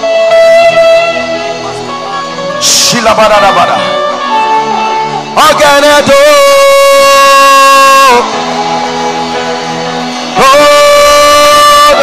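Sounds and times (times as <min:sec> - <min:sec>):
soft guitar music: 0:00.0 - 0:12.0
man crying out into microphone: 0:02.5 - 0:04.5, 0:05.1 - 0:08.3, 0:10.4 - 0:12.0.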